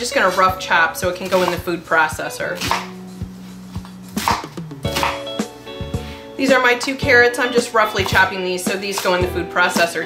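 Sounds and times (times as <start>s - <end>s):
background music: 0.0s - 10.0s
knife chopping on cutting board: 1.3s - 1.7s, 2.6s - 2.9s, 4.2s - 5.3s, 8.0s - 9.2s.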